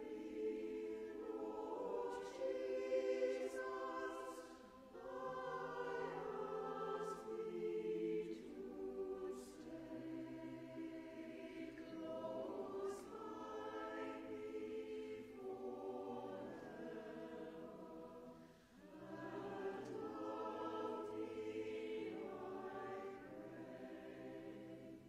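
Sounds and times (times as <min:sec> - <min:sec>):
church choir singing: 0:00.0 - 0:25.0.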